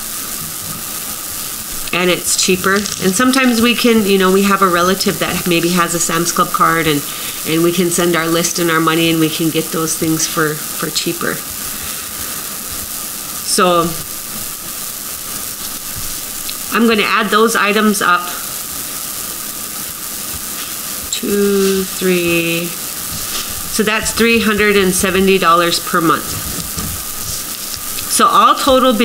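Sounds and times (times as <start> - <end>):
steady background hiss: 0.0 - 29.0
person speaking: 1.9 - 11.5, 13.4 - 14.0, 16.7 - 18.4, 21.1 - 29.0.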